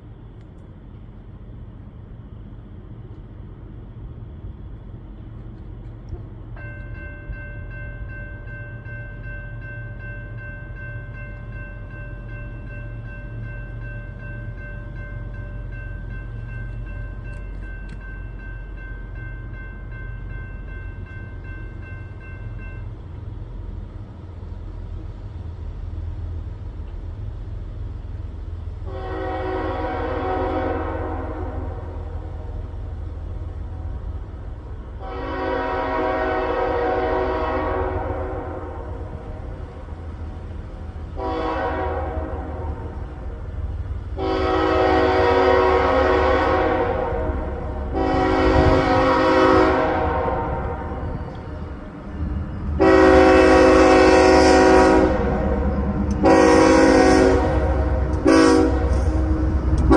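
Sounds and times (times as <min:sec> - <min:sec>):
train rumbling: 0:00.0 - 0:59.9
locomotive horn: 0:28.8 - 0:32.5, 0:35.0 - 0:39.4, 0:41.1 - 0:43.1, 0:44.1 - 0:51.6, 0:52.7 - 0:59.9.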